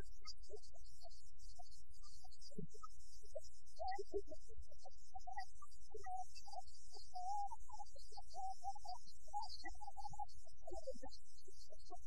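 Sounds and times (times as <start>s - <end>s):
mains hum and hiss: 0.0s - 12.0s.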